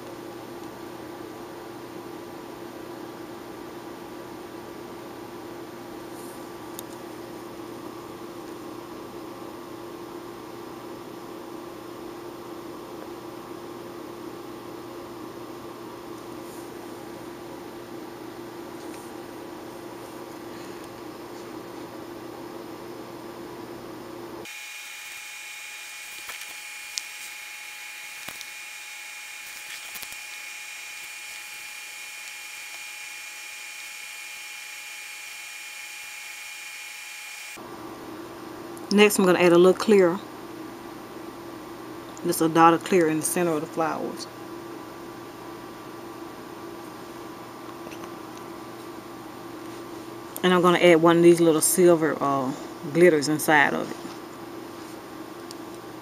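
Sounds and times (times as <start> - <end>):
high steady whine: 16.2 - 37.7.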